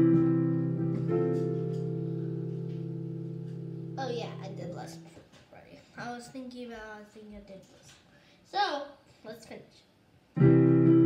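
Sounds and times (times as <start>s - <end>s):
digital piano chords: 0.0s - 5.1s, 10.4s - 11.0s.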